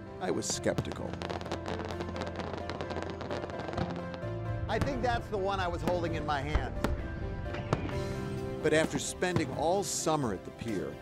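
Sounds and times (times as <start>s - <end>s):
fireworks crackling: 0.4s - 10.8s.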